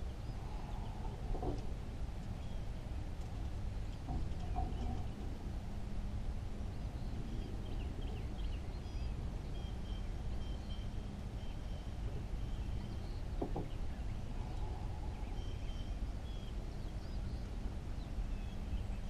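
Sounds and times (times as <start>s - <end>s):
steady low rumble: 0.0s - 19.0s
birds calling: 3.8s - 5.4s, 6.7s - 19.0s.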